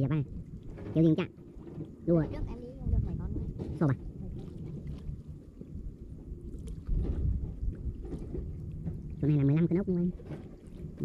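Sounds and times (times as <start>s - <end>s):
wind and water rumble: 0.0s - 11.0s.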